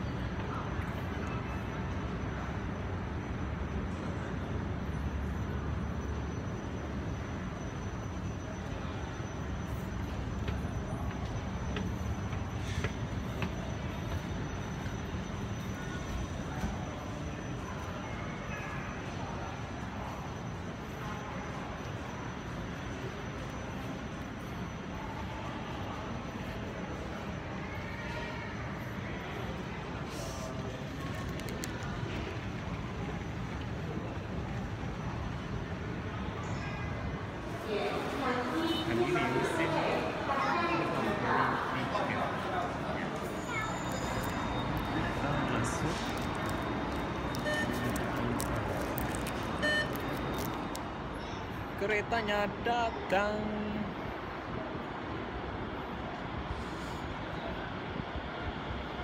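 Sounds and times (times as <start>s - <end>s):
low station rumble: 0.0s - 59.0s
faint voices: 8.2s - 59.0s.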